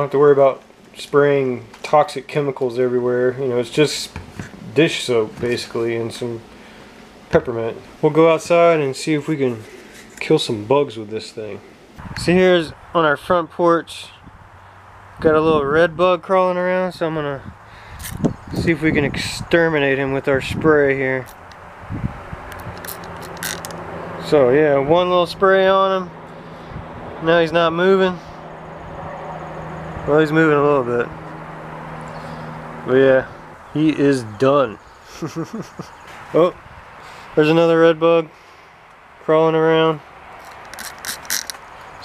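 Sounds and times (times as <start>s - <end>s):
clicks and rustles of handling: 22.5s - 23.8s, 40.4s - 42.0s.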